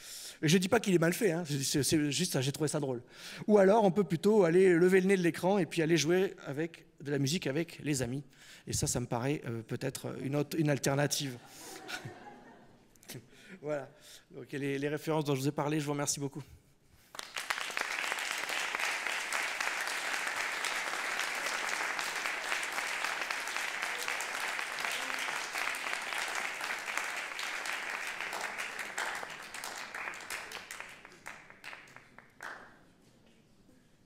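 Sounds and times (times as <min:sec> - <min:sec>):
audience applauding: 0:17.1 - 0:32.7.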